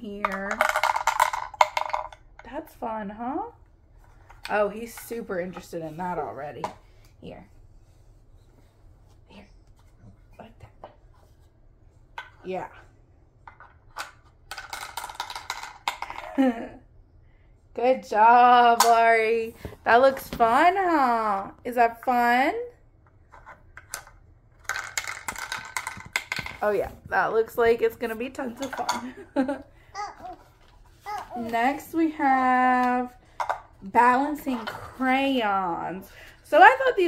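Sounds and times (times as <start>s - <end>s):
piece rattling down wooden maze toy: 0.2s - 2.2s, 13.5s - 16.2s, 23.4s - 26.7s.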